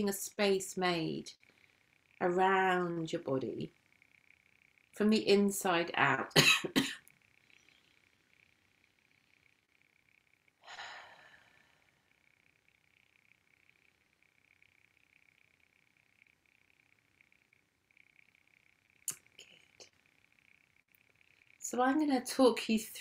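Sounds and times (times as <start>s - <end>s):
person breathing: 10.6s - 12.0s.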